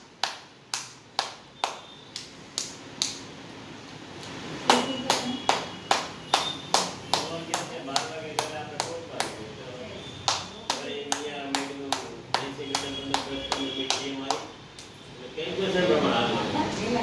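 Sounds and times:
woman clapping hands: 0:00.2 - 0:03.2, 0:04.7 - 0:09.4, 0:10.2 - 0:14.5.

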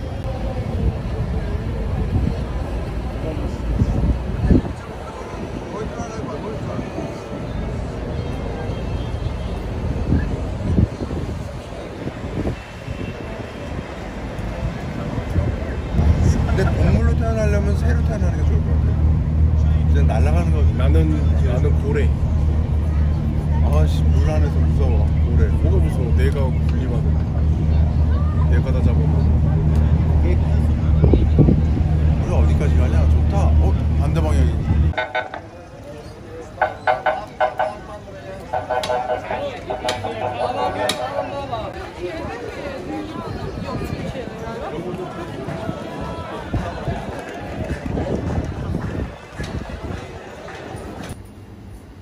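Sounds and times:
boat low rumble: 0:00.0 - 0:51.1
people chattering: 0:00.0 - 0:51.2
wind buffeting microphone: 0:00.5 - 0:08.0, 0:09.7 - 0:19.6, 0:26.6 - 0:35.2, 0:41.4 - 0:51.1
ferry engine drone: 0:15.4 - 0:42.4.

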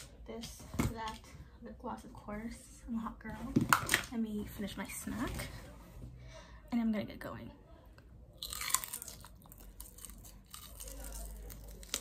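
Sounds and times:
crunchy chewing: 0:08.4 - 0:12.0.

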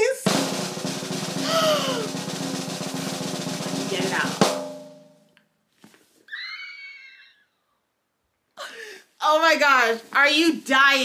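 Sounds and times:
drum roll sound effect: 0:00.0 - 0:05.3
woman squealing excitedly: 0:01.4 - 0:02.1, 0:06.3 - 0:07.6.

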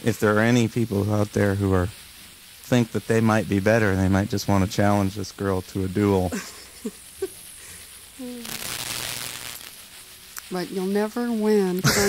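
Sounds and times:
breathy hissing laughter: 0:06.2 - 0:07.9.

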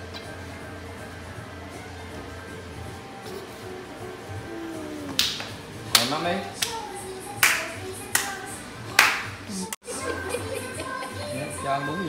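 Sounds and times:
background song: 0:01.6 - 0:12.0
hand claps: 0:05.1 - 0:06.8, 0:07.4 - 0:09.4.

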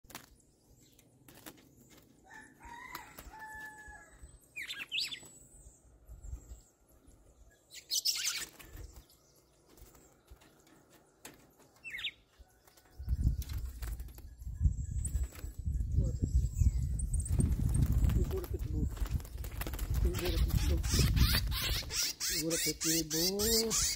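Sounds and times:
wings fluttering: 0:00.0 - 0:05.5, 0:07.8 - 0:16.0, 0:16.8 - 0:22.4
birds calling and chirping: 0:00.1 - 0:23.9.

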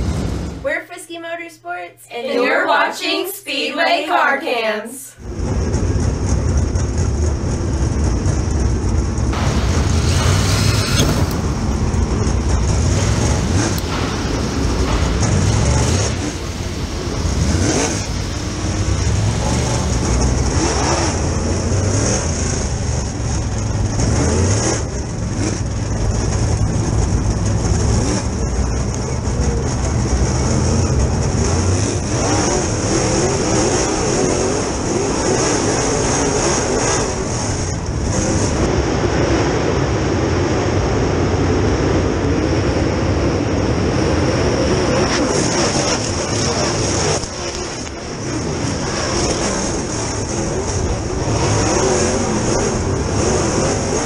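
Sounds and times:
other race car engines: 0:00.0 - 0:00.7, 0:05.1 - 0:54.0
race car engine revving: 0:05.2 - 0:54.0.

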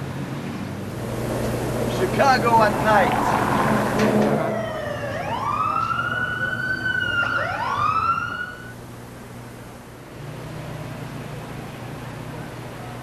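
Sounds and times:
emergency vehicle siren wailing: 0:01.0 - 0:08.8.

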